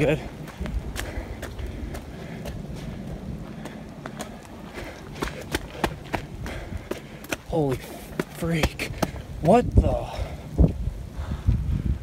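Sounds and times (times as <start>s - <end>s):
hurried footsteps on wet dirt: 0.0s - 11.3s
steady low rumble: 0.0s - 12.0s.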